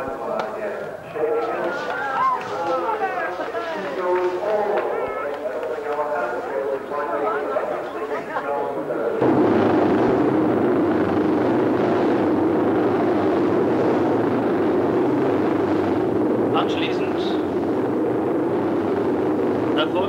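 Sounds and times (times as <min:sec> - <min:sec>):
racing motorcycle engines rumbling: 0:09.2 - 0:20.0.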